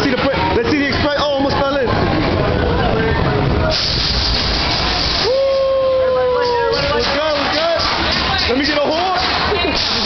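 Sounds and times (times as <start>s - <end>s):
roller coaster train rumbling: 0.0s - 10.0s
air brakes hissing: 3.6s - 10.0s.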